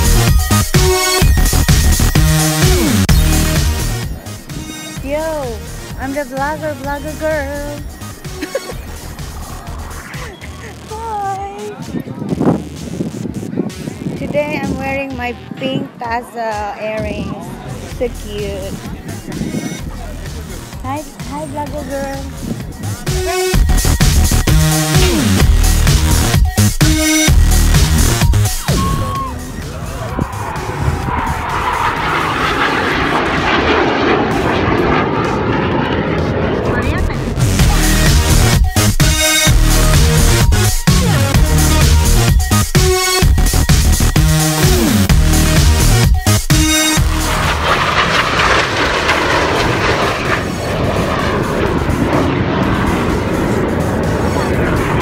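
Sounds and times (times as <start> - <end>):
music: 0.0 - 32.0, 34.3 - 49.4, 51.0 - 55.0
jets roaring past: 2.3 - 10.9, 17.2 - 26.4, 28.0 - 43.0, 44.5 - 55.0
spectators' voices: 4.0 - 23.9, 28.4 - 33.0
jet engine flying past: 28.7 - 37.6, 46.8 - 55.0.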